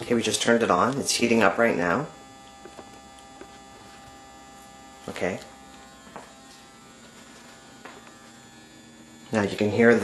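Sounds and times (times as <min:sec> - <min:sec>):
grow light buzzing hum: 0:00.0 - 0:10.0.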